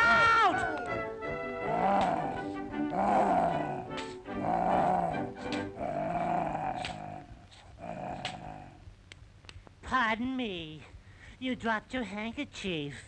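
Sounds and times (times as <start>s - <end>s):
background music: 0.0s - 7.3s
cartoon lion roaring: 1.6s - 8.8s.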